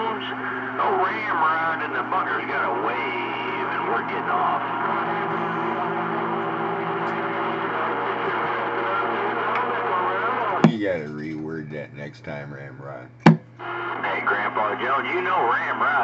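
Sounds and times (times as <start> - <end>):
garbled radio transmission: 0.0 - 16.0
humming radio tones: 0.0 - 16.0
radio static: 0.0 - 16.0.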